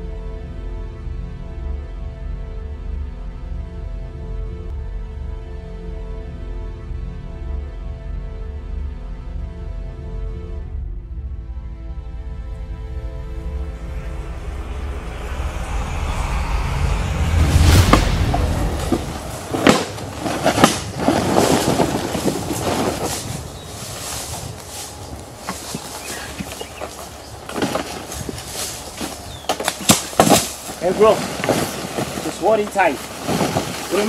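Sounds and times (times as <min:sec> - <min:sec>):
deep rumbling: 0:10.6 - 0:34.0
rustling in dry leaves: 0:17.0 - 0:34.0
sticks snapping: 0:18.7 - 0:32.4.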